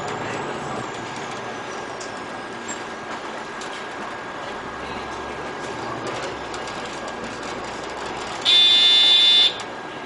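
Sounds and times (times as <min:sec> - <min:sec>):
bus engine running: 0:00.0 - 0:10.0.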